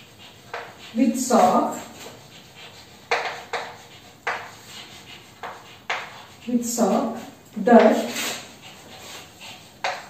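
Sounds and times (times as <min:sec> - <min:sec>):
chalk tapping and scraping: 0:00.0 - 0:10.0.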